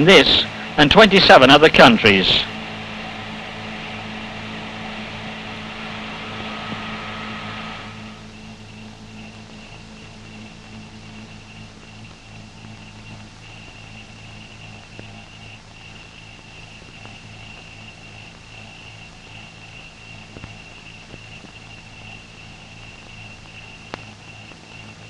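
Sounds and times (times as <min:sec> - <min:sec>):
faint high whine: 0:00.0 - 0:25.0
mains hum and hiss: 0:00.0 - 0:25.0.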